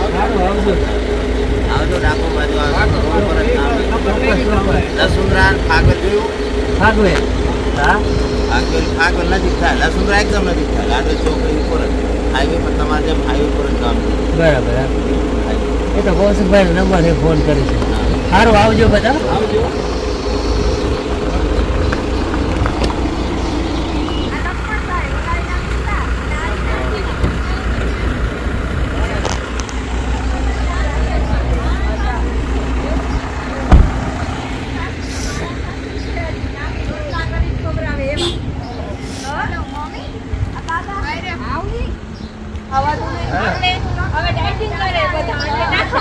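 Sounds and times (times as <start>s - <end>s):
car engine idling: 0.0s - 46.0s
man speaking: 1.6s - 19.9s
loud thump: 33.6s - 34.2s.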